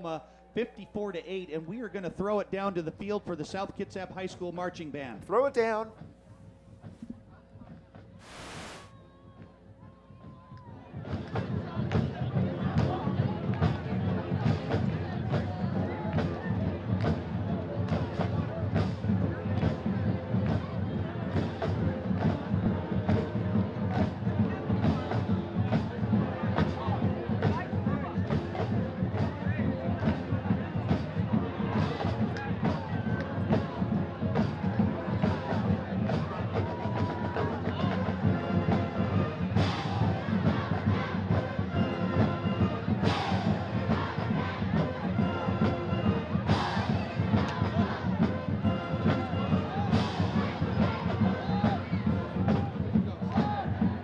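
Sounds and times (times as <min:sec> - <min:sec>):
brass horns and sousaphones: 0:08.2 - 0:08.9, 0:38.2 - 0:51.2
drums keeping a steady beat: 0:08.2 - 0:08.9, 0:10.8 - 0:54.0
crowd noise: 0:08.2 - 0:54.0.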